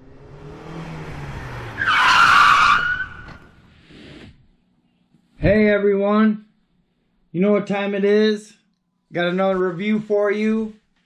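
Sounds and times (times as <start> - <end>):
car engine revving: 0.0 - 3.8
loud tyre screech: 0.3 - 3.8.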